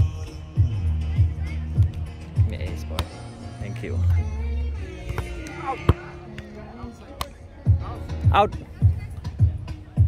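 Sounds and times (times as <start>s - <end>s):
background music: 0.0s - 10.0s
hands slapping a volleyball: 5.1s - 6.5s.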